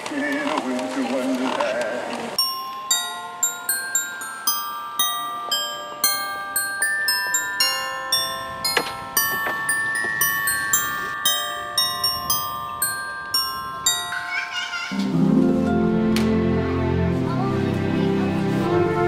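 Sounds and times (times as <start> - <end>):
bell-like melody: 2.4 - 17.5.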